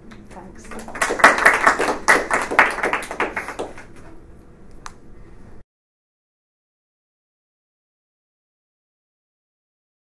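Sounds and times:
audience applauding: 0.6s - 3.9s.

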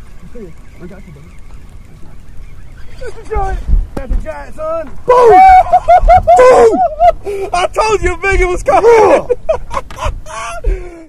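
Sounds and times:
wind rumble on microphone: 0.0s - 10.9s
men yelling and whooping: 2.8s - 11.0s
heavy bumps: 2.9s - 5.2s, 7.8s - 8.9s.

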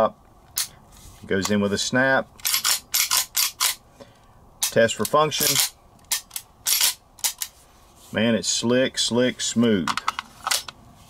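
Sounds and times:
pistol action metal clicks: 2.4s - 3.8s, 4.6s - 7.5s.

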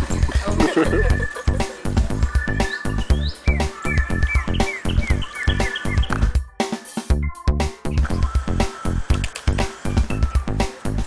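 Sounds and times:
electronic music with pounding beat: 0.0s - 11.0s.

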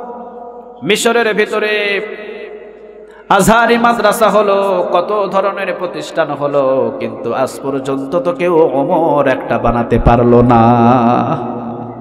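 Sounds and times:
man chanting a sermon: 0.8s - 2.6s, 3.2s - 12.0s.

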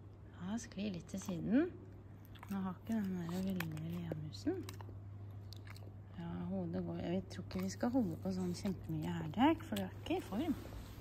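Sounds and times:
woman's voice: 0.3s - 4.8s, 6.1s - 11.0s
dog chewing: 1.1s - 11.0s.

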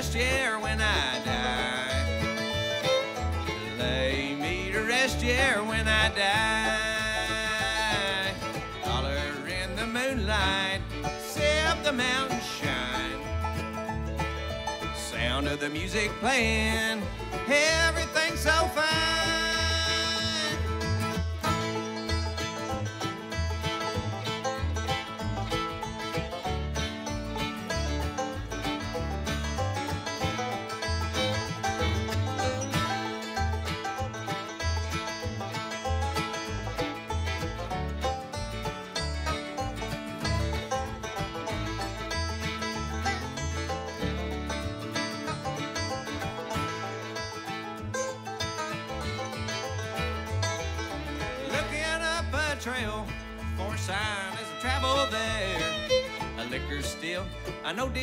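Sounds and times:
banjo: 0.0s - 58.0s
bluegrass band playing: 0.0s - 58.0s.

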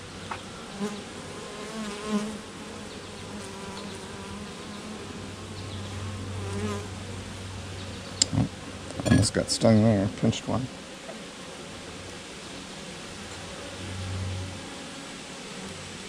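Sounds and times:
bee colony humming: 0.0s - 16.0s
bees flying past buzzing: 0.1s - 8.9s, 10.1s - 16.0s.

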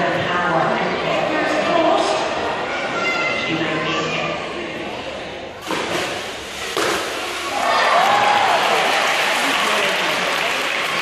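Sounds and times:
audience applause and cheering: 7.4s - 11.0s.

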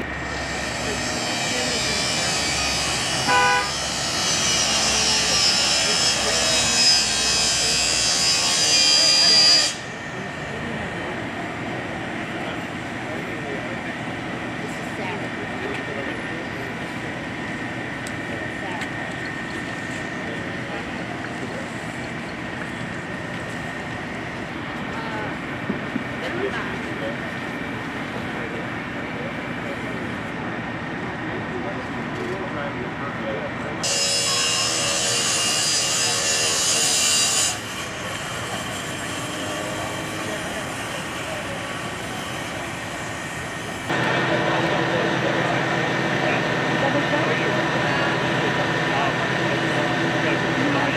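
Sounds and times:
indistinct voices talking: 0.0s - 50.9s
grinder cutting metal: 0.2s - 10.4s, 33.8s - 44.0s
horn toot: 3.2s - 3.8s.

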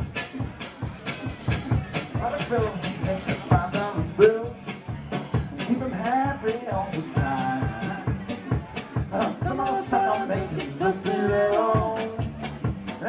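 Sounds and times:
drum kit beat: 0.0s - 13.0s
electric guitars: 0.0s - 13.0s
person singing: 2.2s - 4.8s, 5.6s - 13.0s.

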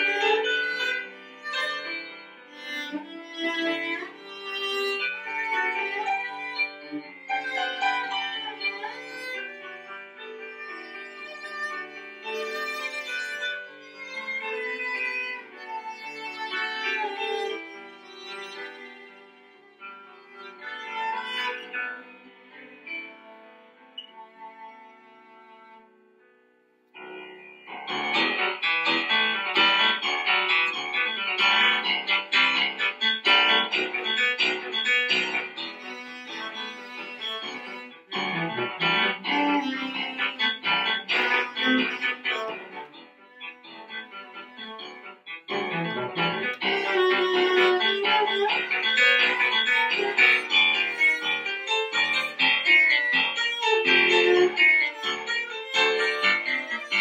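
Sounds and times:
cello playing a tango: 0.0s - 26.0s, 30.7s - 57.0s
piano accompaniment: 0.0s - 57.0s.

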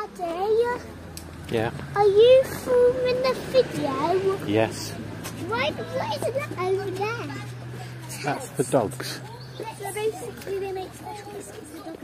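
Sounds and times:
small child speaking: 0.0s - 1.0s, 1.9s - 4.5s, 5.4s - 7.8s, 9.2s - 12.0s.

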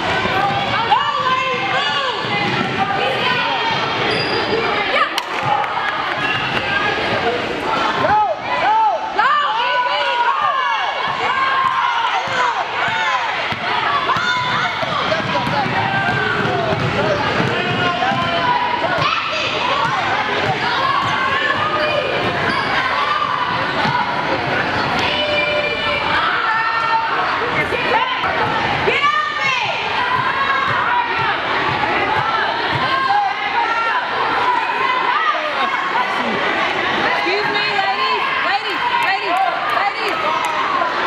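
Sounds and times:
crowd shouting and talking: 0.0s - 41.0s
spectators' voices: 0.0s - 41.0s
sneakers squeaking: 0.3s - 7.5s, 11.1s - 26.1s
basketball bouncing on wood floor: 12.3s - 18.4s.

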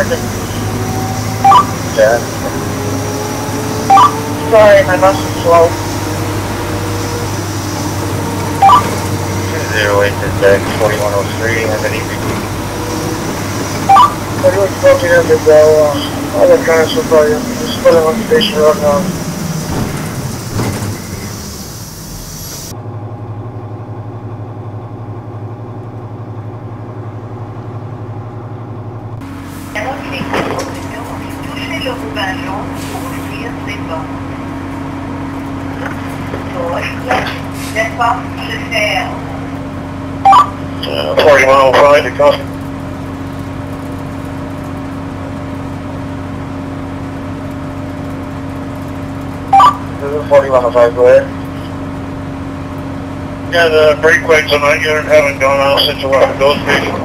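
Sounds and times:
bus interior drone: 0.0s - 57.0s
indistinct talk: 4.5s - 5.9s, 9.3s - 12.6s, 14.4s - 19.2s, 29.8s - 34.4s, 35.7s - 39.5s, 40.7s - 42.5s, 53.5s - 57.0s.

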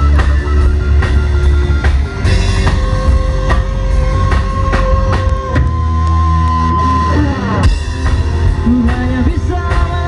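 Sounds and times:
drum kit beat: 0.0s - 10.0s
electric guitars: 0.0s - 10.0s
heavy bass: 0.0s - 10.0s.

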